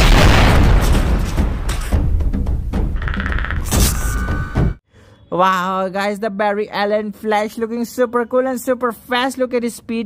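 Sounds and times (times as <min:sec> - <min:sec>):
explosion boom with rumbling tail: 0:00.0 - 0:01.7.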